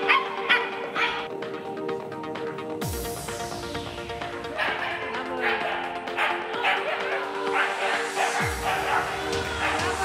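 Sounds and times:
dog barking: 0:00.0 - 0:01.2, 0:04.5 - 0:10.0
background music: 0:00.0 - 0:10.0.

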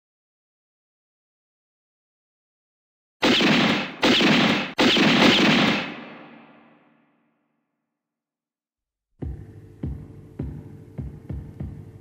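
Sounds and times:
gunshots echoing: 0:03.2 - 0:07.0.

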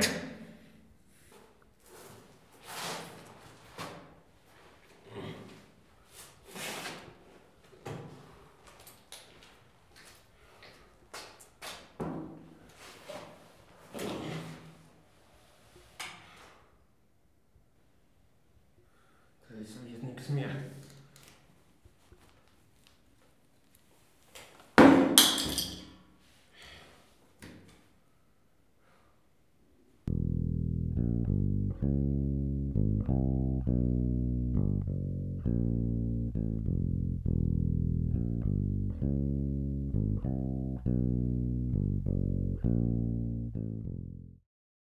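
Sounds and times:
plucked bass guitar: 0:30.1 - 0:44.4.

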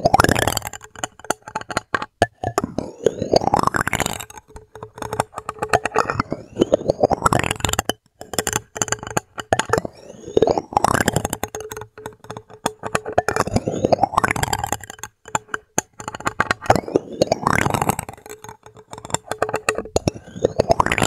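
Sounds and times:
plastic spoons scraping plastic dome: 0:00.0 - 0:21.0.

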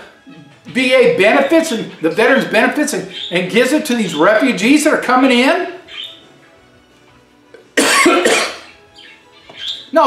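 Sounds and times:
man talking: 0:00.6 - 0:05.9
man coughing: 0:07.8 - 0:08.7.

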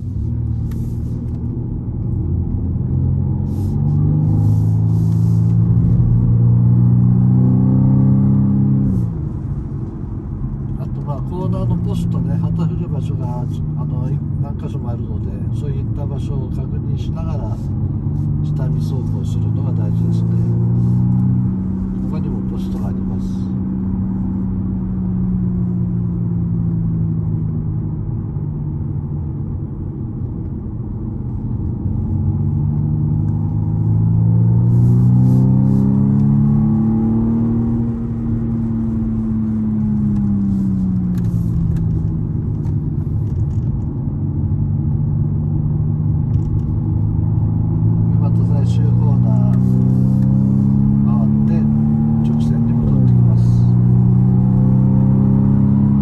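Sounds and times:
car engine accelerating: 0:00.0 - 0:56.0.

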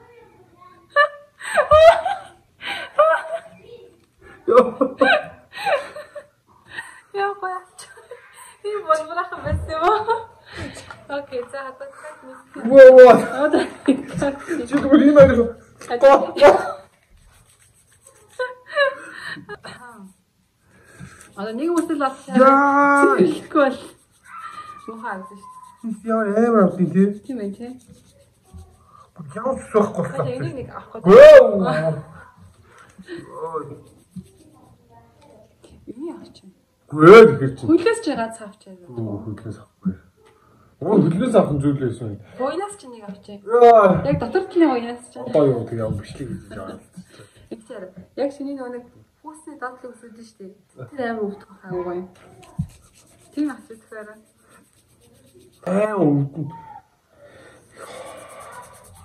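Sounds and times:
person speaking: 0:21.1 - 0:32.4, 0:50.9 - 0:56.9
person wailing: 0:22.3 - 0:23.3
person yelping: 0:22.3 - 0:23.3, 0:24.3 - 0:25.9.

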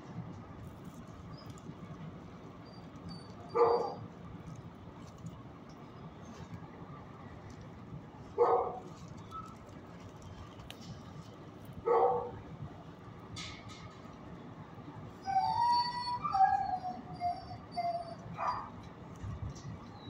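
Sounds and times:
dog barking: 0:03.6 - 0:04.0, 0:08.4 - 0:08.8, 0:11.8 - 0:12.4
dog whining: 0:15.2 - 0:18.8.

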